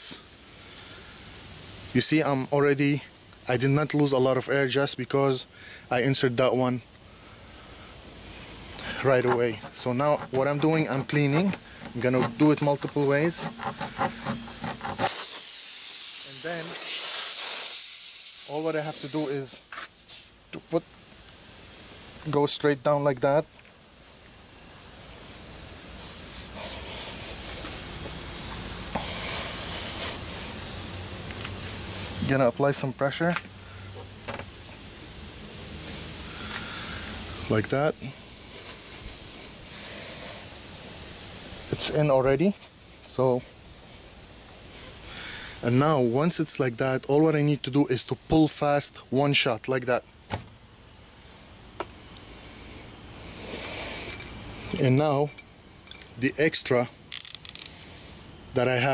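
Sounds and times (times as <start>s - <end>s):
faint rushing noise: 0.0s - 50.0s
air hissing out of a tyre: 13.7s - 20.4s, 25.0s - 31.0s, 35.7s - 37.4s.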